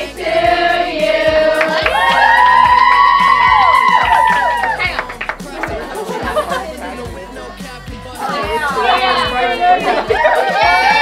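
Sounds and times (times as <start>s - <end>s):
girls chattering: 4.6s - 7.5s, 8.1s - 11.0s.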